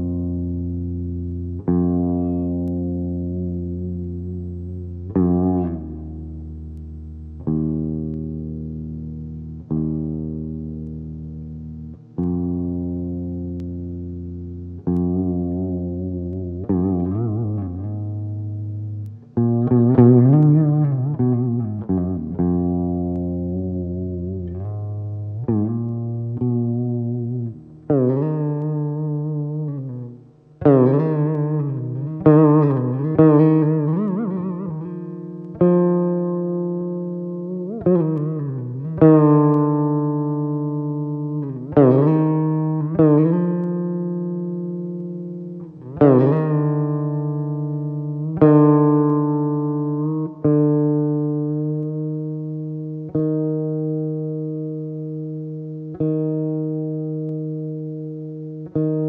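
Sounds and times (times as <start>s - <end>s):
veena plucked notes: 0.0s - 59.0s.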